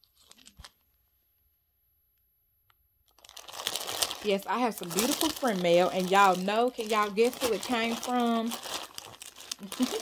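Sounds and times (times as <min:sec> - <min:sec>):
plastic bag crinkling: 0:00.0 - 0:00.8, 0:03.1 - 0:10.0.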